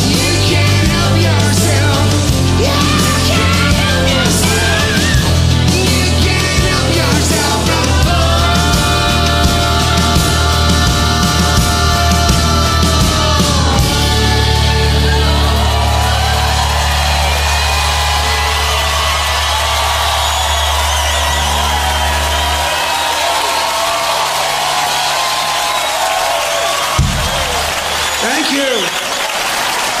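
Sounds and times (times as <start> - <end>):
rock band chord: 0.0 - 26.0
audience cheering and applauding: 0.0 - 30.0
crowd whooping: 0.0 - 30.0
thump: 27.0 - 27.6.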